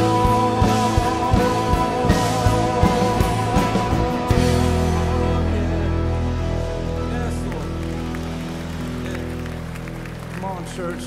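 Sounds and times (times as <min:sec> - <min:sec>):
keyboard sustained chord: 0:00.0 - 0:11.0.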